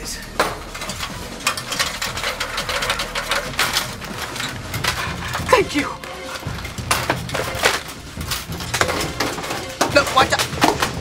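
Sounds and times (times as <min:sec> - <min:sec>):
metal ladder clanking: 0:00.4 - 0:11.0.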